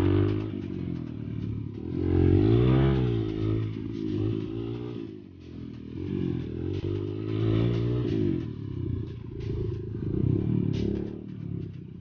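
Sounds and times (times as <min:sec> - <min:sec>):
dirt bike engine revving: 0:00.0 - 0:12.0.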